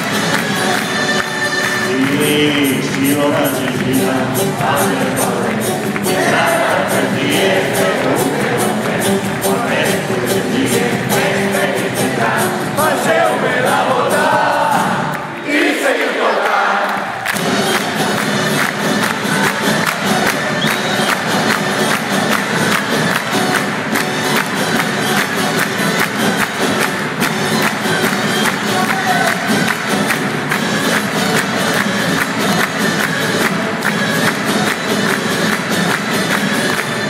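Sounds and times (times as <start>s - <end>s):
crowd cheering: 0.0s - 9.9s, 10.7s - 35.0s
crowd clapping along: 0.0s - 37.0s.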